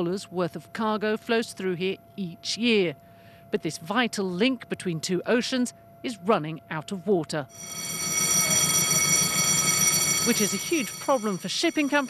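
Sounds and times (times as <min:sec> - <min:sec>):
high-pitched machinery whine: 0:07.5 - 0:12.0.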